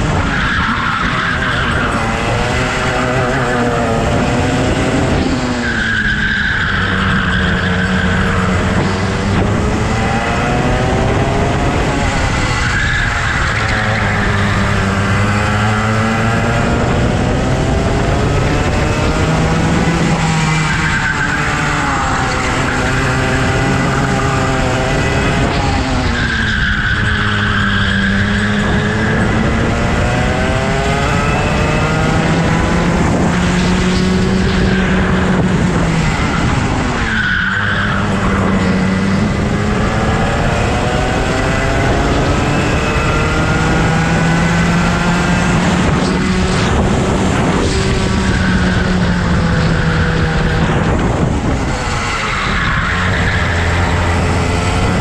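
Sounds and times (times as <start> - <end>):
go-kart engine: 0.0 - 55.0.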